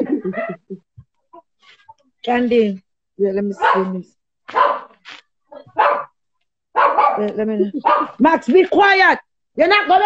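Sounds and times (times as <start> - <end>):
dog barking: 3.6 - 8.2.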